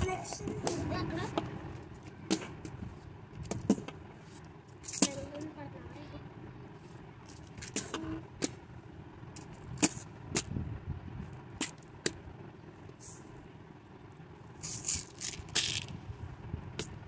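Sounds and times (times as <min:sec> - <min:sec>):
low background rumble: 0:00.0 - 0:17.0.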